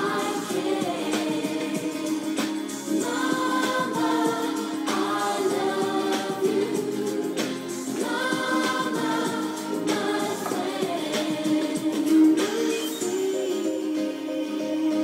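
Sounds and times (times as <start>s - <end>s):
men singing in harmony: 3.0s - 15.0s.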